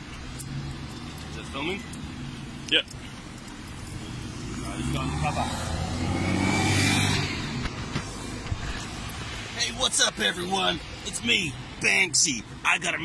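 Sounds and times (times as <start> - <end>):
car driving past: 4.3 - 7.7.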